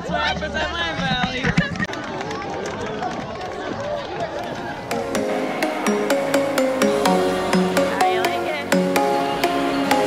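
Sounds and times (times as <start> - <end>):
crowd chattering: 0.0 - 10.0.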